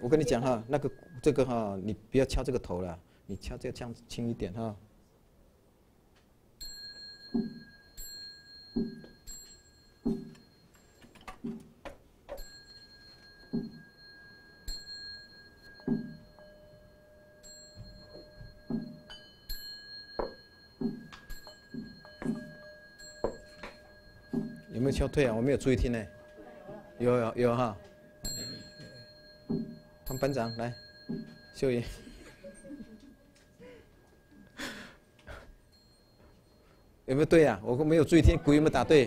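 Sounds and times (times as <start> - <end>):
bowl bell ringing: 0.0 - 2.4, 6.6 - 11.1, 12.3 - 39.0.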